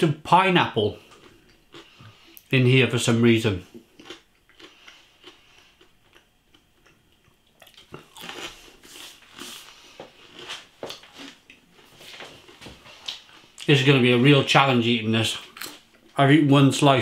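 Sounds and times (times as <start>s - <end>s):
person chewing pizza: 1.0s - 2.6s, 3.6s - 13.7s, 15.4s - 16.2s.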